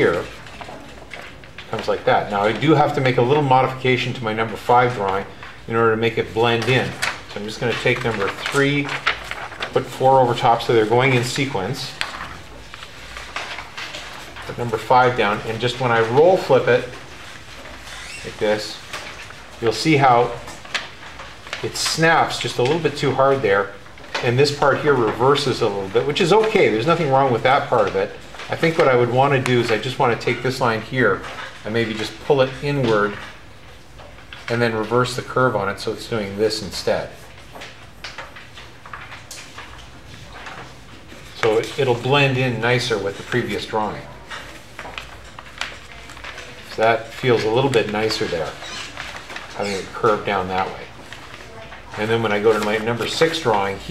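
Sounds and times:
paper sheets rustling: 0:00.0 - 0:53.9.

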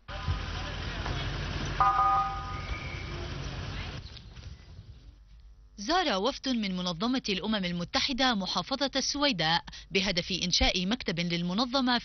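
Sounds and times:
vehicle engines rumbling: 0:00.0 - 0:05.0
brief multi-pitch tone: 0:01.8 - 0:03.1.

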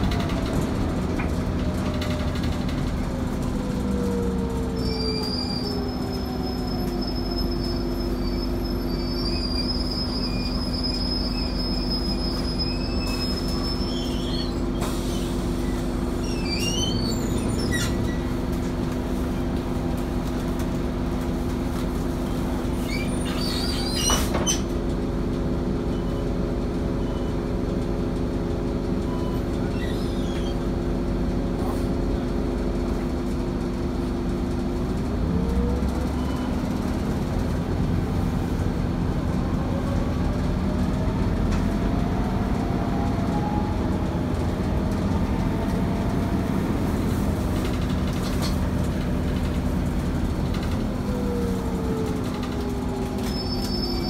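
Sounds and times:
bus drivetrain hum: 0:00.0 - 0:54.0
squeaks and rattles: 0:04.8 - 0:18.4, 0:22.8 - 0:24.7, 0:29.1 - 0:30.7, 0:52.4 - 0:54.0.

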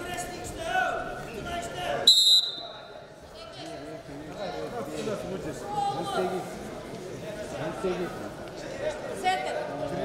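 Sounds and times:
crowd voices: 0:00.0 - 0:10.0
referee's whistle blast: 0:02.1 - 0:02.7.

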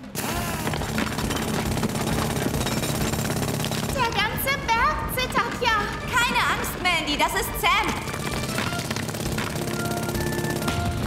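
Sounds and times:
hammer drill boring into rock: 0:00.2 - 0:04.2, 0:08.0 - 0:11.0.

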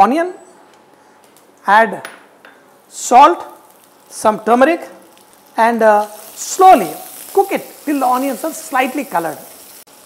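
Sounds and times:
person speaking: 0:05.6 - 0:09.5.

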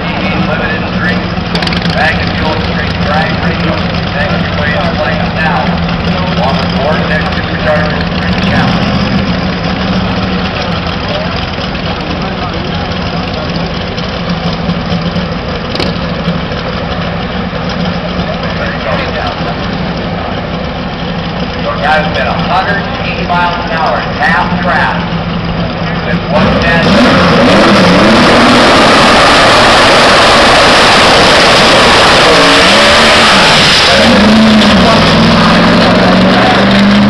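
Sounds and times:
race car engine idling loudly: 0:00.0 - 0:37.0.

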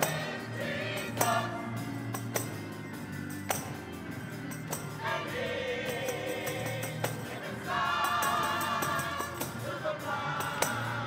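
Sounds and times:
choir singing: 0:00.0 - 0:02.6, 0:04.7 - 0:11.0
organ chords: 0:00.0 - 0:11.0
sharp percussion hits: 0:02.1 - 0:05.2.

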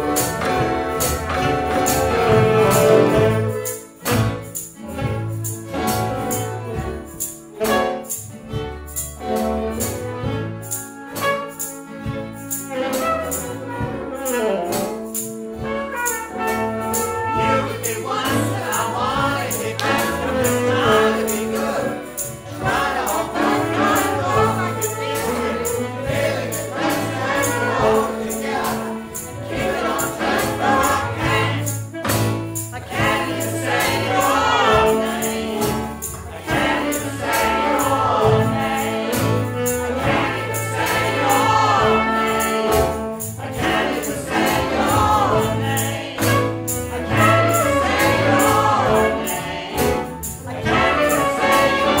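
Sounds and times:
people singing: 0:00.0 - 0:03.8, 0:16.2 - 0:52.0
drums: 0:00.0 - 0:08.2
acoustic folk ensemble playing: 0:00.0 - 0:52.0
light percussion: 0:00.0 - 0:52.0
violins: 0:00.0 - 0:52.0.

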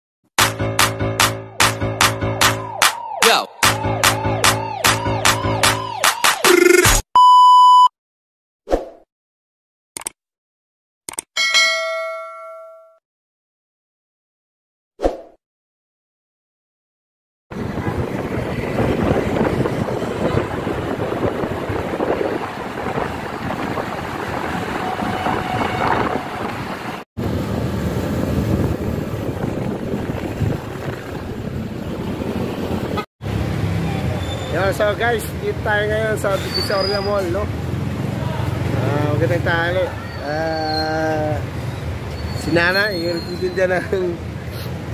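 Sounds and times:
intro music with sharp beats: 0:00.4 - 0:07.0
high-pitched beep: 0:06.5 - 0:07.9
wind buffeting microphone: 0:17.5 - 0:33.0
road noise: 0:17.5 - 0:44.9.

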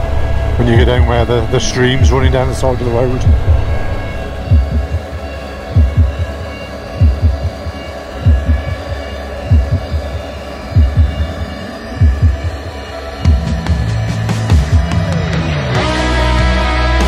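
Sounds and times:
held synth tones: 0:00.0 - 0:16.4
deep drum thumps: 0:03.2 - 0:05.1, 0:05.8 - 0:06.4, 0:07.0 - 0:07.6, 0:08.3 - 0:08.9, 0:09.5 - 0:10.1, 0:10.8 - 0:11.3, 0:12.0 - 0:12.6.

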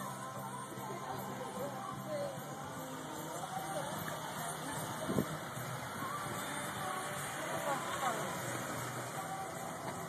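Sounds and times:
steady car noise: 0:00.0 - 0:10.0.

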